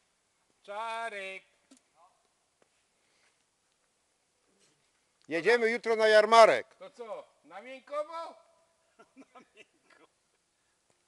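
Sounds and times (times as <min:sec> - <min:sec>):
man speaking: 0:05.3 - 0:08.5.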